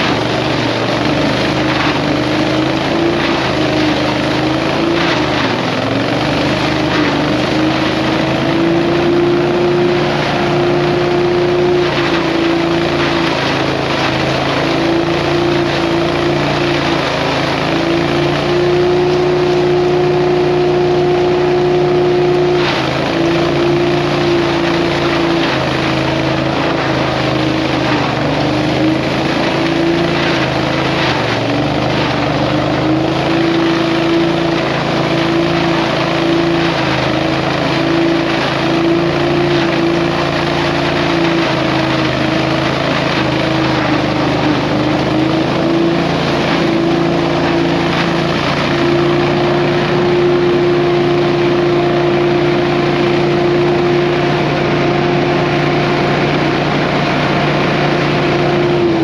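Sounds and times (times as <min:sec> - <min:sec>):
small engine running at high throttle: 0:00.0 - 0:59.0.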